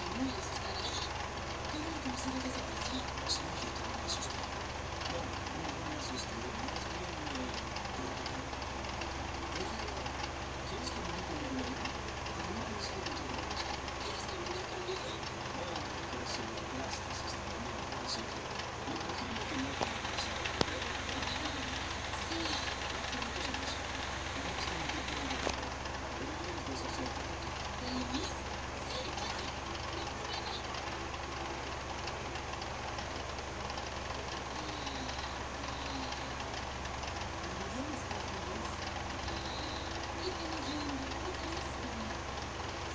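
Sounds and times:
soft indistinct voices: 0:00.0 - 0:42.9
steady low hum: 0:00.0 - 0:42.9.

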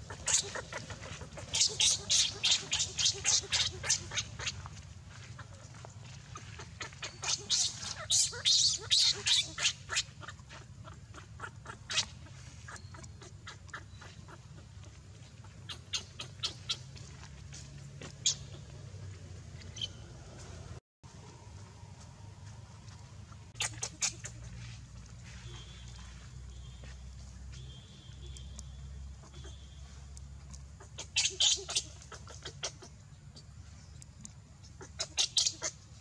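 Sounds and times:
baby monkey squeaking cries: 0:00.0 - 0:04.6, 0:06.4 - 0:14.6, 0:15.6 - 0:16.9, 0:23.5 - 0:24.5, 0:29.2 - 0:29.6, 0:30.8 - 0:32.9, 0:34.8 - 0:35.8.

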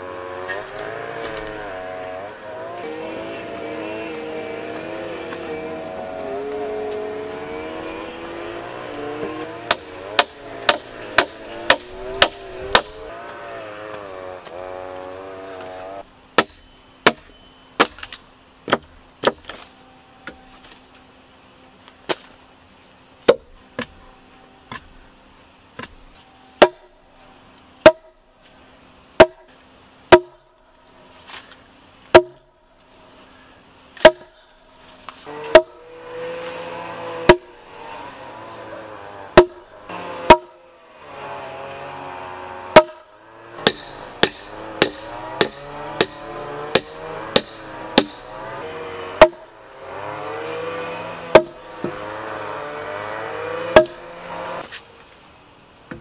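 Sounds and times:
soft continuous background sound: 0:00.0 - 0:56.0
axe striking wood: 0:09.2 - 0:13.1, 0:16.4 - 0:20.4, 0:23.2 - 0:24.0, 0:24.7 - 0:24.9, 0:25.8 - 0:26.0, 0:26.6 - 0:26.9, 0:27.8 - 0:28.2, 0:29.2 - 0:29.5, 0:30.1 - 0:30.4, 0:32.1 - 0:32.5, 0:34.0 - 0:34.4, 0:35.4 - 0:37.6, 0:39.3 - 0:39.7, 0:40.3 - 0:40.6, 0:42.7 - 0:43.0, 0:43.6 - 0:49.5, 0:50.8 - 0:52.1, 0:53.2 - 0:54.7.

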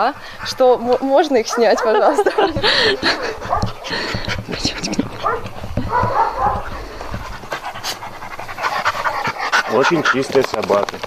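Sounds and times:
dog panting: 0:00.0 - 0:11.0
rustling of fur grooming: 0:00.0 - 0:11.0.

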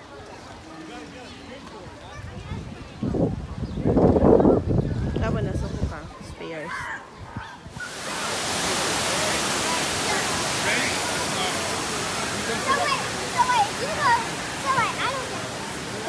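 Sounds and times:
people's voices and shouts: 0:06.2 - 0:16.0
water rushing: 0:07.7 - 0:16.0.

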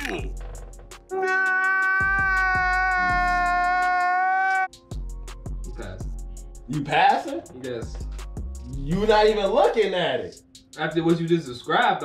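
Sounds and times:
music with beat and bass: 0:00.0 - 0:01.4, 0:02.0 - 0:03.9, 0:04.7 - 0:12.0
man wailing high-pitched: 0:01.1 - 0:04.7.

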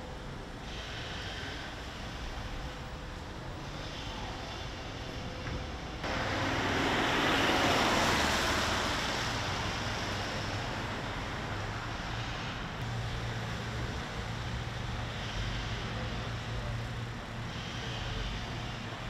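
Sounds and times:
passing vehicle: 0:03.7 - 0:19.0.

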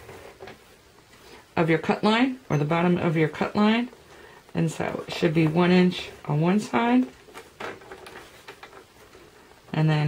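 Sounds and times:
card stock rustling: 0:04.9 - 0:09.8.

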